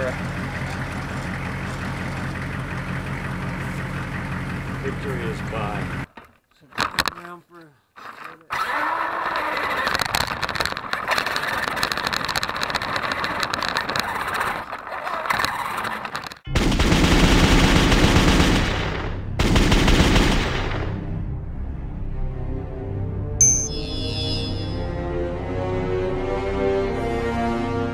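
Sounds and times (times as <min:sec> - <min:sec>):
dense crackling rattle: 0:09.4 - 0:19.1.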